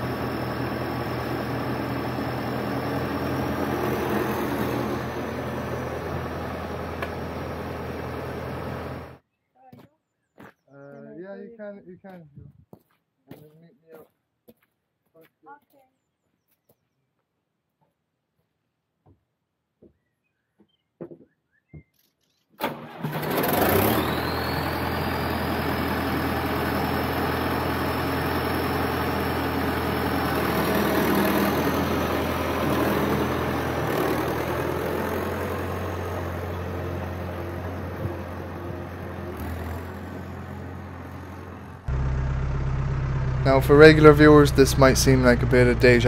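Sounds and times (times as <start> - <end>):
deeper engine hum: 0.0 - 9.2, 23.3 - 46.0
thin rising whine: 0.0 - 9.2
tractor diesel engine running: 0.0 - 9.2, 22.6 - 46.0.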